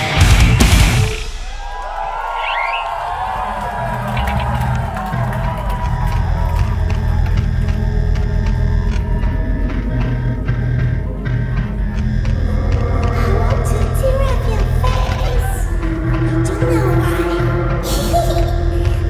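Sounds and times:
heavy metal band playing: 0:00.0 - 0:01.8, 0:03.4 - 0:19.0
crowd cheering and shouting: 0:00.0 - 0:18.9
low pulsing drone: 0:02.2 - 0:19.0.

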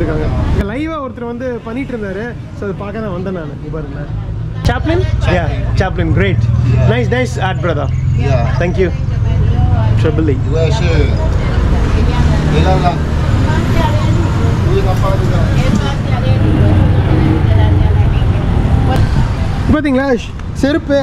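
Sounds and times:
indistinct voices talking: 0:00.0 - 0:20.4
low street rumble: 0:00.0 - 0:21.0.

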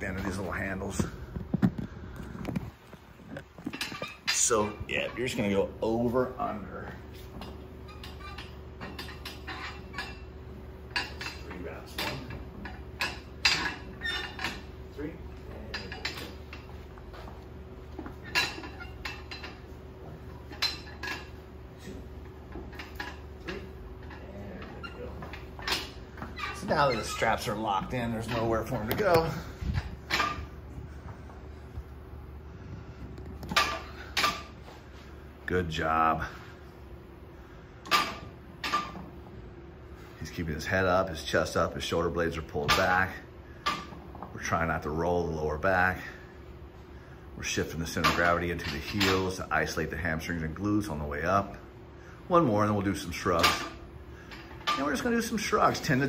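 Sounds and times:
thin steady hum: 0:00.0 - 0:56.0.

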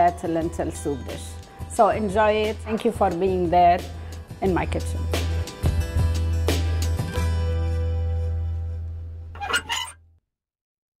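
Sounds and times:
short squeaky sound effects: 0:09.4 - 0:10.0.

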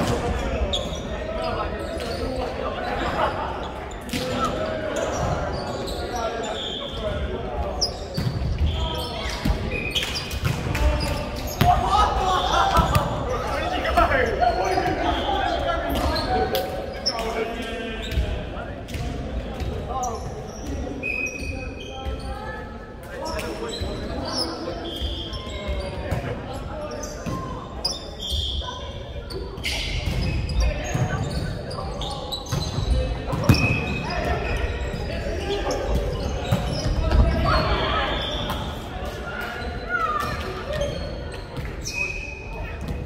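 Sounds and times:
sneakers squeaking: 0:00.0 - 0:43.0
players shouting: 0:10.8 - 0:16.5.

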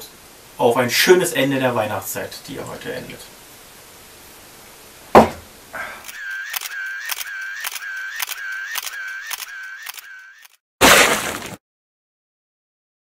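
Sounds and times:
motor-drive whirring: 0:06.0 - 0:10.6
camera shutter clicks: 0:06.1 - 0:10.6.

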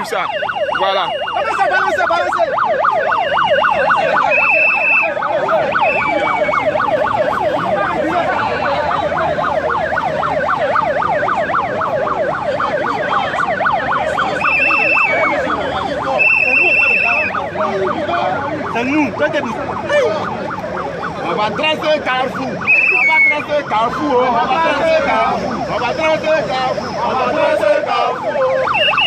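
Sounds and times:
sirens wailing: 0:00.0 - 0:29.0
high whistle blasts: 0:04.2 - 0:05.2, 0:05.8 - 0:06.6, 0:14.4 - 0:15.4, 0:16.2 - 0:17.4, 0:22.6 - 0:23.5, 0:28.7 - 0:29.0.

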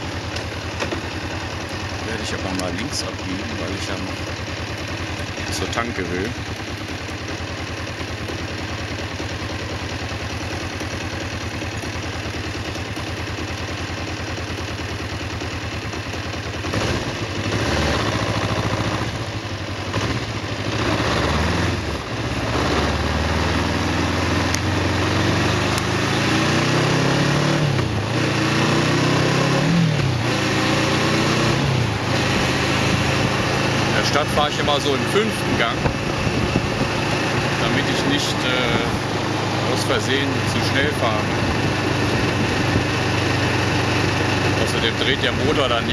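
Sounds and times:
motorcycle engine revving: 0:00.0 - 0:45.9.

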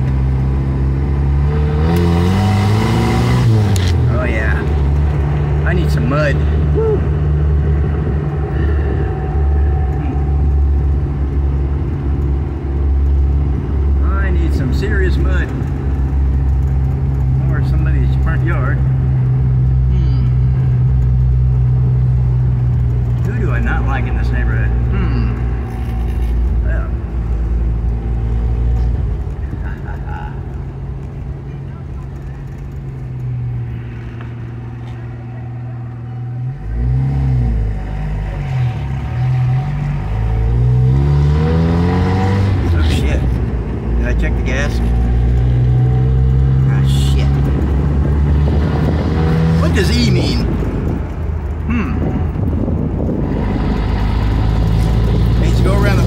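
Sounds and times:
engine droning inside cabin: 0:07.7 - 0:12.7.

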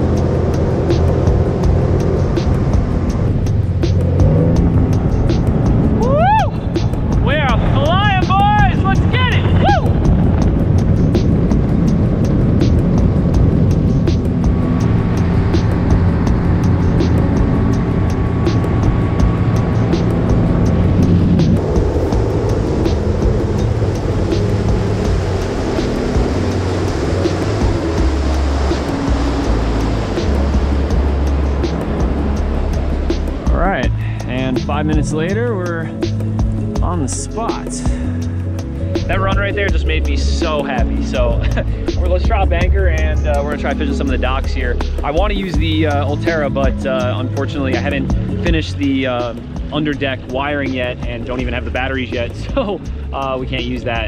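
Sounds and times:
background music: 0:00.0 - 0:54.0
boat motor running: 0:00.0 - 0:54.0.

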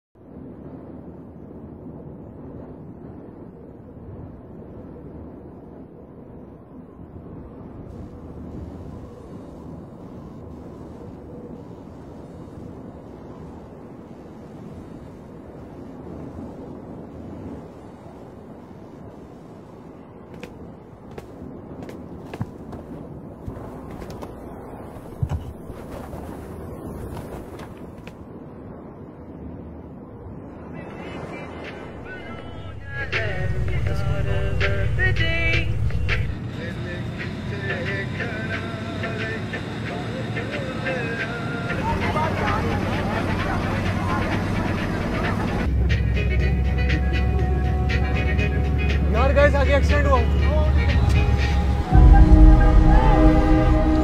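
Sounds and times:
steady low rumbling: 0:31.8 - 0:39.4, 0:41.6 - 0:54.0.

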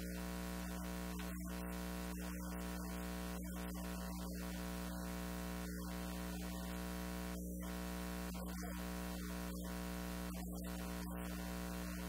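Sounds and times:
constant hiss: 0:00.0 - 0:12.0
electrical hum and buzz: 0:00.0 - 0:12.0.

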